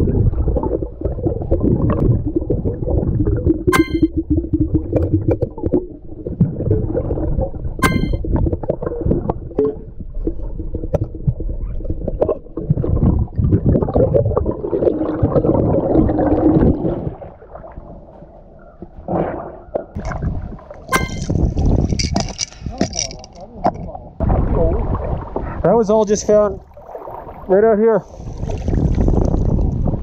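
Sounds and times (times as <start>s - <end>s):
muffled underwater rumbling: 0.0s - 30.0s
glass clinking: 3.8s - 4.1s, 7.8s - 8.2s, 20.9s - 21.3s.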